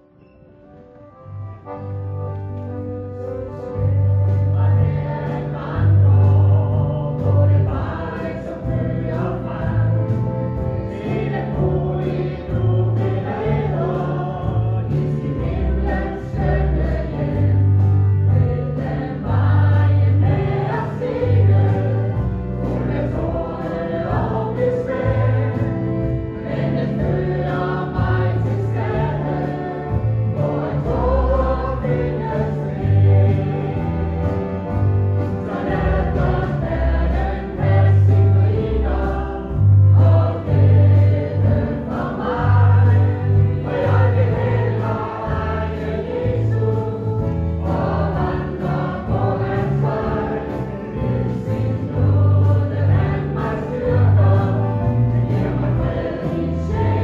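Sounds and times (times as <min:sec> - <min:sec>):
instrumental accompaniment: 0:00.0 - 0:57.0
sustained bass notes: 0:00.8 - 0:57.0
choir singing a hymn: 0:01.0 - 0:57.0.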